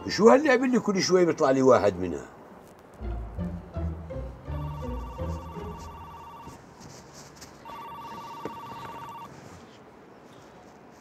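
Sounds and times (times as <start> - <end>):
mobile phone ringing: 4.5 - 6.6, 7.6 - 9.3.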